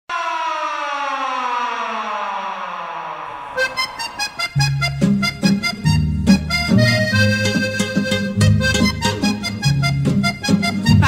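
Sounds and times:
siren-like descending tone: 0.1 - 6.0.

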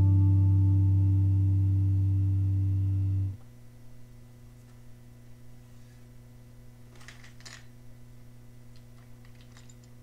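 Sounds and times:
electric guitar low note: 0.0 - 3.4
faint amp hum: 0.0 - 10.0.

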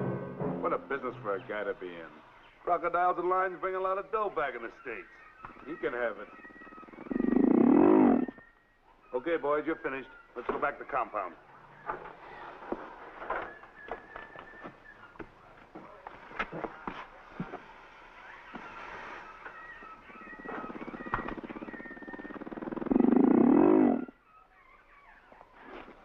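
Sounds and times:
faint high whistling tones: 4.4 - 7.4, 8.0 - 16.0, 17.4 - 25.9
crocodiles growling: 6.8 - 8.4, 20.3 - 24.1.

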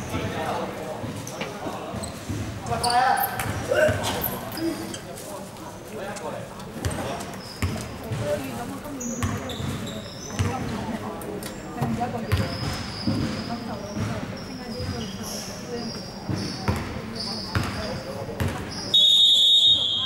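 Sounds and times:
basketball bouncing on hardwood floor: 10.4 - 10.6, 18.4 - 18.6.

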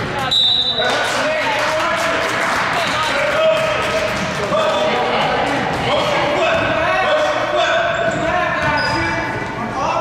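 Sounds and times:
echoing voices: 0.0 - 10.0.

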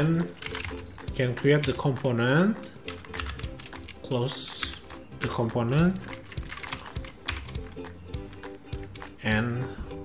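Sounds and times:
computer keyboard typing: 0.0 - 9.1
soft background music: 0.0 - 10.0.

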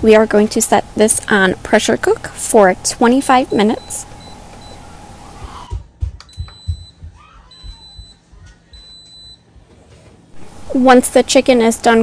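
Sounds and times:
pressure cooker beeps: 3.4 - 4.8.

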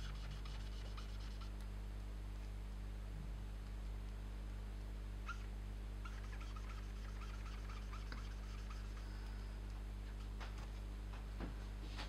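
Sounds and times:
marker squeaking on paper: 0.0 - 1.6, 5.2 - 9.2
low electrical hum: 0.0 - 12.0.

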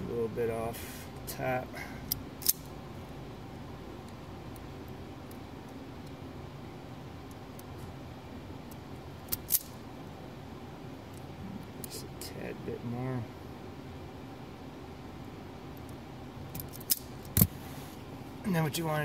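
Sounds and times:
steady low hiss: 0.0 - 19.0.

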